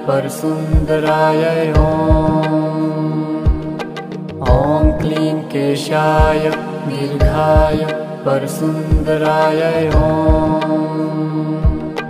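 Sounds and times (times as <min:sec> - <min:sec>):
steady drone: 0:00.0 - 0:12.0
low drum beats: 0:00.8 - 0:01.0, 0:01.8 - 0:02.4, 0:03.5 - 0:03.8, 0:04.4 - 0:05.1, 0:06.2 - 0:06.5, 0:07.2 - 0:07.8, 0:08.9 - 0:09.2, 0:09.9 - 0:10.6, 0:11.6 - 0:12.0.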